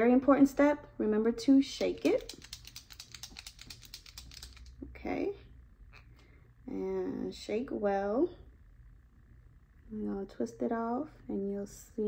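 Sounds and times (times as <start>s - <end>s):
tube shaken with faint clicks: 1.9s - 4.8s.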